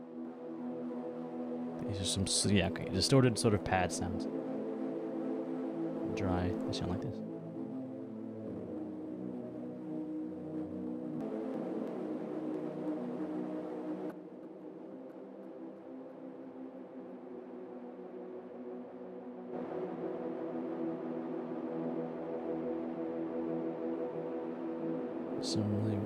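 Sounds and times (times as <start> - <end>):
distorted synth pad chords: 3.2 - 26.0.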